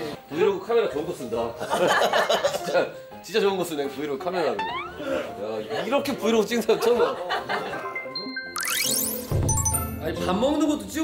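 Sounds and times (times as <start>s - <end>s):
rising chime sweep: 8.6s - 9.9s.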